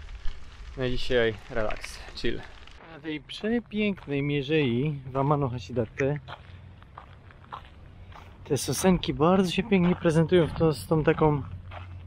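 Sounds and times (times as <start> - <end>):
footsteps on gravel path: 0.0 - 12.0
man's voice: 8.5 - 11.5.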